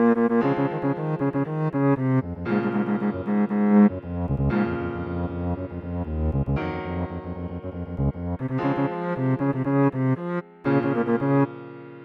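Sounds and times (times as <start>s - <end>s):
cello melody: 0.0s - 11.9s
keyboard chords: 0.0s - 12.0s.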